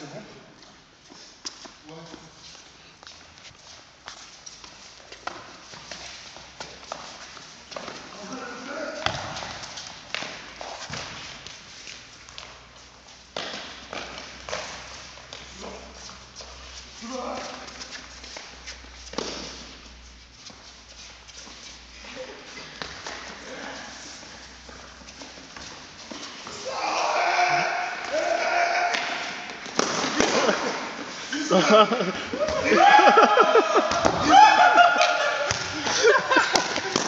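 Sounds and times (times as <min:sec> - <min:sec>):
football being kicked: 0:09.0 - 0:09.5
players shouting: 0:26.5 - 0:29.6, 0:31.5 - 0:37.0.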